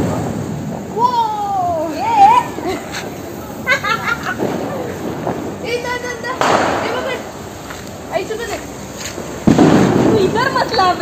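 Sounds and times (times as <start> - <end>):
faint voices: 0.0 - 11.0
loud fireworks burst: 0.0 - 11.0.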